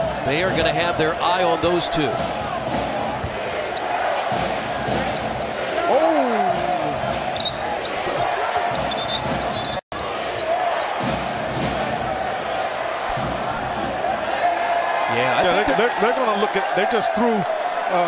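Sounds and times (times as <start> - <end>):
sneakers squeaking: 3.1 - 10.9.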